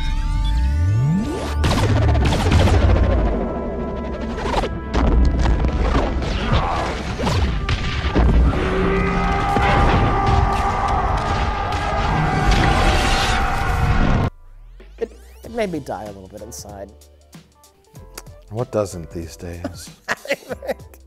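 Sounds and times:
dramatic film score: 0.0 - 16.8
blasts and explosion impacts: 1.5 - 3.5, 4.5 - 14.3.

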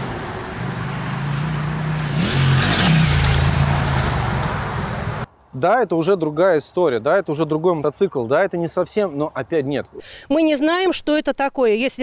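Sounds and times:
motorcycle engine passing by: 0.0 - 5.3.

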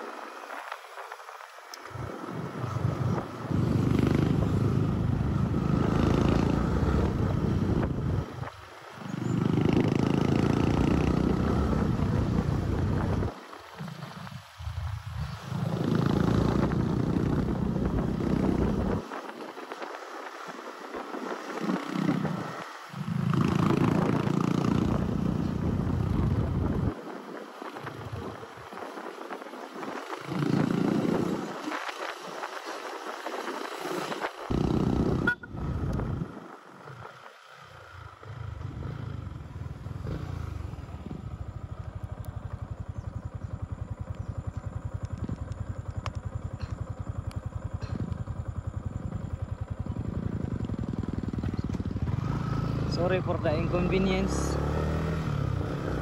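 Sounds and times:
wind buffeting microphone: 0.0 - 37.2, 37.8 - 54.3
motorcycle engine idling: 37.8 - 55.0.

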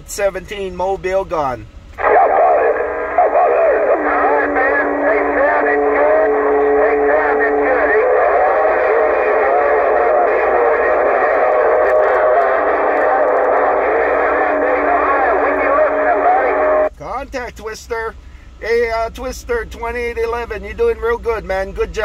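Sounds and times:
radio voices overlapping and warbling: 2.0 - 16.9.

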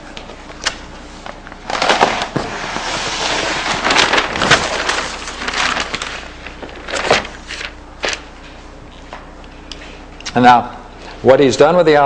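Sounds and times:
paper sheets rustling: 1.2 - 8.6.

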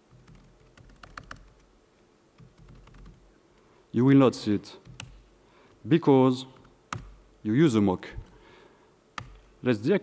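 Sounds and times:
computer keyboard typing: 0.1 - 1.6, 2.4 - 3.2.

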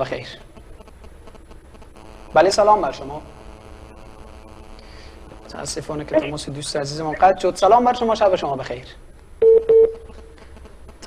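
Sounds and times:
telephone beeps: 9.4 - 10.4.

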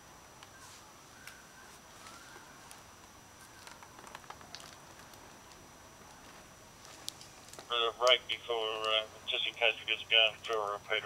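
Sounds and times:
background hiss: 0.0 - 11.0
high-pitched whine: 0.0 - 11.0
soft clicks and crackles: 0.4 - 9.6.

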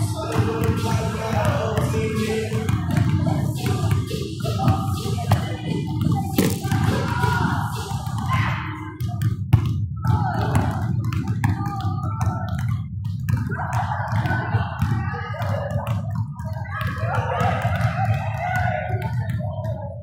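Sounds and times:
voices echoing: 0.0 - 9.4, 10.0 - 20.0
music echoing: 0.0 - 20.0
basketballs bouncing on wood floor: 0.1 - 20.0.

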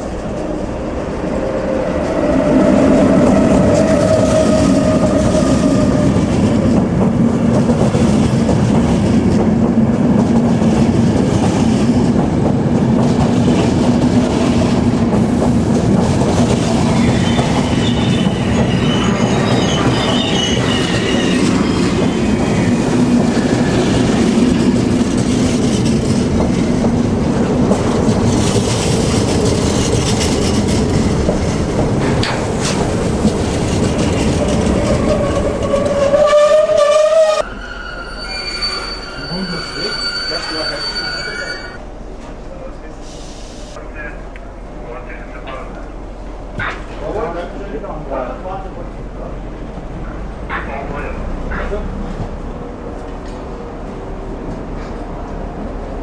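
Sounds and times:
locomotive whine: 0.0 - 6.8, 28.8 - 41.8
train wheels rumbling on rail: 0.0 - 56.0
wheels squealing: 16.8 - 24.0, 33.7 - 41.8.

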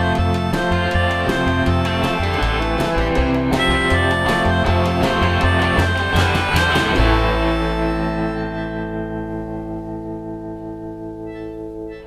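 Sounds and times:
small live band playing: 0.0 - 12.0.

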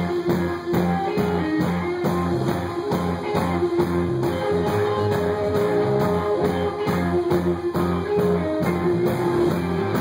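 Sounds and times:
drum kit steady beat: 0.0 - 10.0
electric guitars: 0.0 - 10.0.

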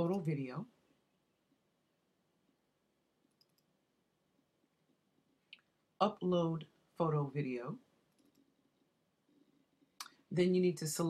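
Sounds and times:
faint computer mouse clicks: 3.3 - 3.7, 8.1 - 8.5.

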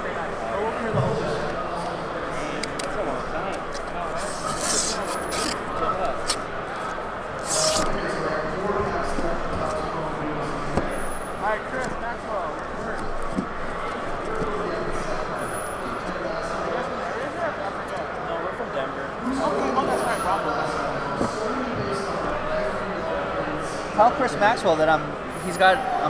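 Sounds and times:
crowd chatter: 0.0 - 26.0
cardboard tearing: 4.2 - 6.5, 7.4 - 8.0.

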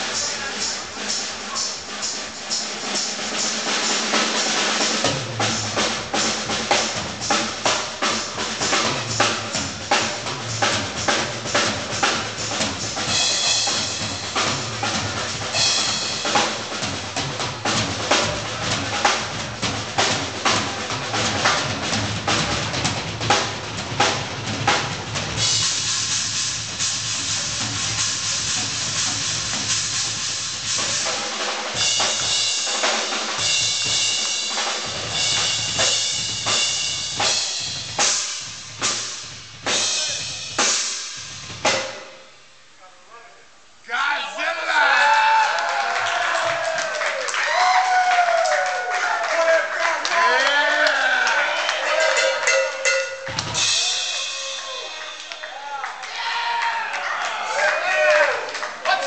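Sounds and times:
rock band playing loudly: 0.0 - 42.2, 51.4 - 55.6
cymbals washing: 0.0 - 42.6, 51.8 - 55.7.

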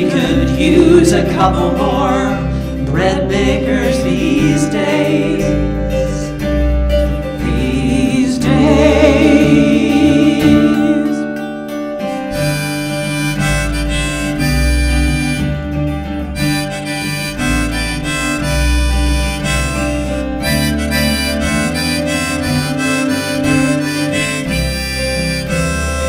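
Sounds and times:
low bass line: 0.0 - 26.0
strummed acoustic guitar: 0.0 - 26.0
harmonica solo: 4.3 - 26.0.

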